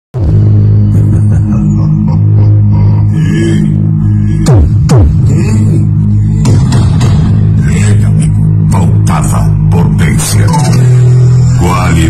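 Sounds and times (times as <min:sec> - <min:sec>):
electronic music with heavy bass: 0:00.2 - 0:12.0.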